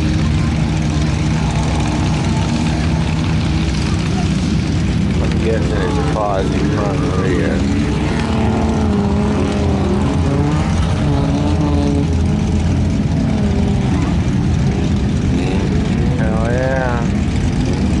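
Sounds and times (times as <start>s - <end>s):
engine revving in mud: 0.0s - 18.0s.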